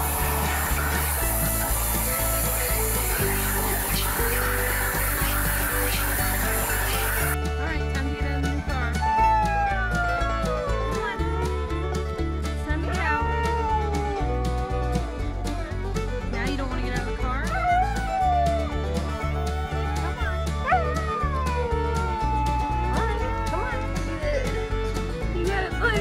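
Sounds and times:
country music with bass beat: 0.0s - 26.0s
husky howling: 9.0s - 12.0s, 12.9s - 15.0s, 17.6s - 24.5s.

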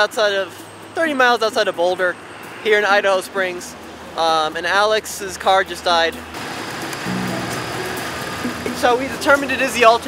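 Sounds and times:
outdoor hiss: 6.4s - 9.8s.

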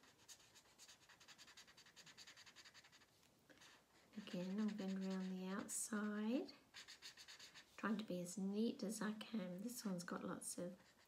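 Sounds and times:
marker scribbling on paper: 0.0s - 8.0s, 10.7s - 11.0s.

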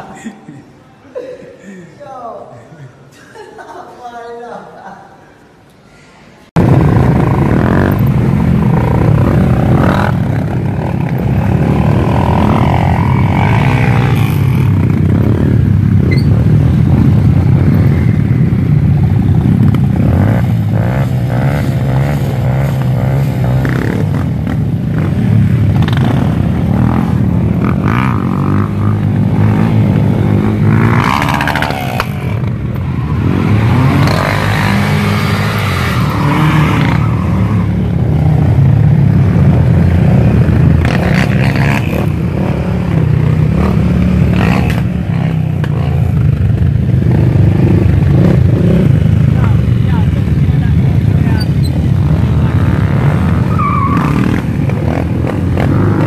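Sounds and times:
motorcycle engines revving: 6.5s - 56.0s.

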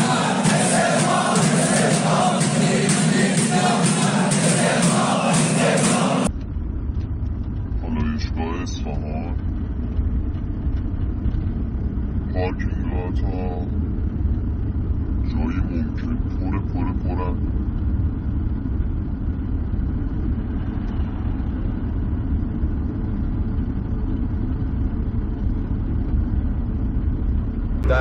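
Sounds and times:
car engine and road noise: 0.0s - 28.0s.

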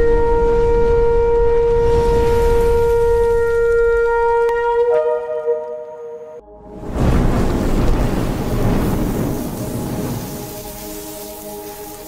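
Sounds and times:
shofar long held note: 0.0s - 6.8s
low rumble: 6.4s - 11.5s.

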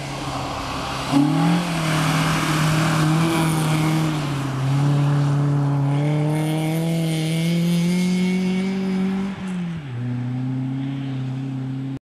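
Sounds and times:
car engine revving: 0.0s - 11.9s.

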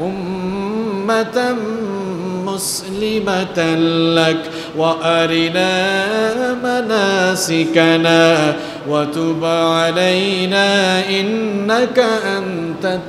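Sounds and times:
man chanting melodic recitation: 0.0s - 13.0s.

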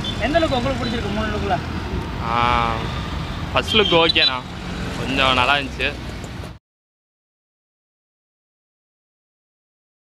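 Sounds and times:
road traffic noise: 0.0s - 6.6s
men talking: 2.2s - 6.1s.

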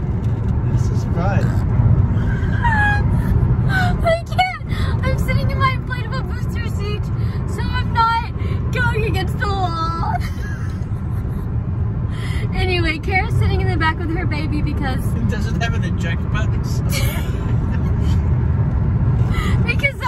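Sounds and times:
road noise inside a car: 0.0s - 20.0s
woman laughing hard: 10.2s - 11.4s.

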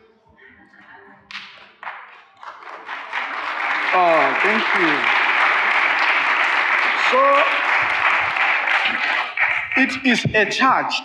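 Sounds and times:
sharp handclaps: 1.3s - 10.4s.

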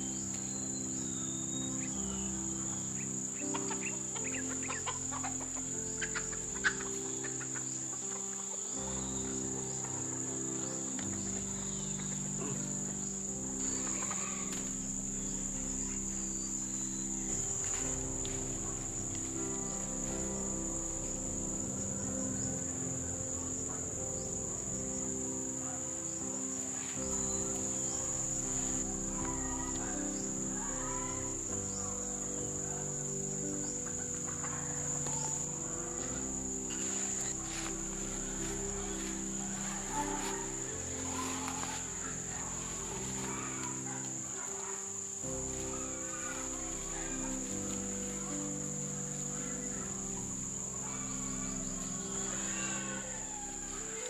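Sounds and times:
insects chirring: 0.0s - 54.0s
soft background music: 0.0s - 54.0s.

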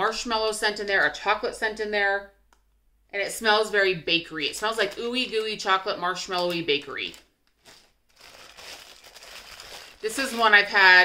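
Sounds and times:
plastic packaging crinkling: 4.5s - 11.0s.

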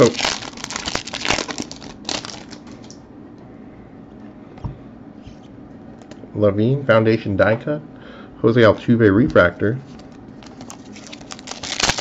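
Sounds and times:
foil wrapper tearing and crinkling: 0.0s - 2.9s, 10.4s - 12.0s.

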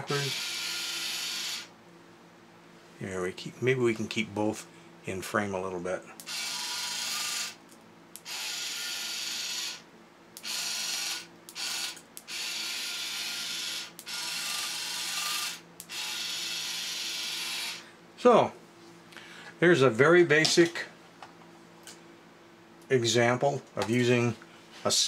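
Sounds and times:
toy robot gear motor running: 0.0s - 1.7s, 6.2s - 7.6s, 8.2s - 9.8s, 10.4s - 17.8s
ratchet pawl clicking: 6.2s - 7.6s, 8.2s - 9.8s, 10.4s - 17.8s.

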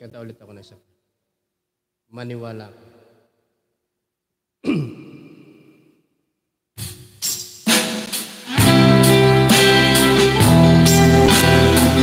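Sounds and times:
acoustic guitar strumming chords: 8.5s - 12.0s.

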